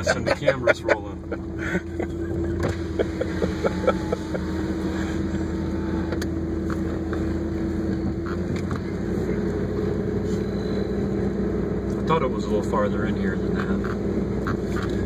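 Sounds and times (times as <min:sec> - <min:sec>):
road and tyre rumble: 0:00.0 - 0:15.0
vehicle engine running: 0:00.0 - 0:15.0.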